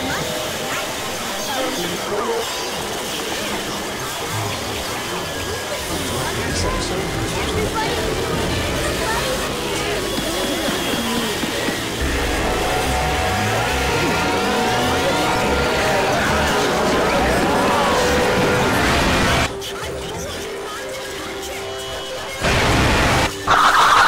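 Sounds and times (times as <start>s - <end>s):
jumble of logo music: 12.0s - 19.6s.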